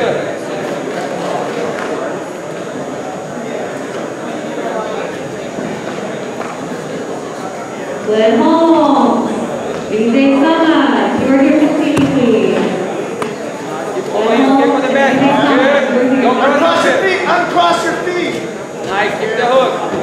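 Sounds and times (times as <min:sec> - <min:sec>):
men shouting in echoing hall: 0:14.2 - 0:19.9.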